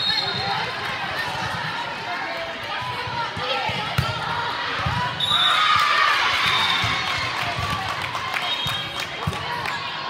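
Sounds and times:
players and spectators shouting: 0.0 - 10.0
referee whistle blast: 5.2 - 5.7.

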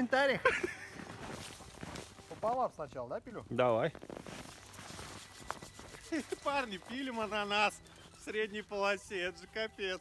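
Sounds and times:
campfire crackling and snapping: 0.8 - 10.0.

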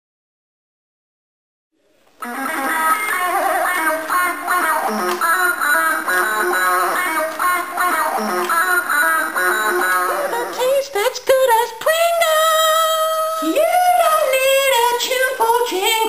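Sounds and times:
electronic toy guitar riff: 2.2 - 10.8.

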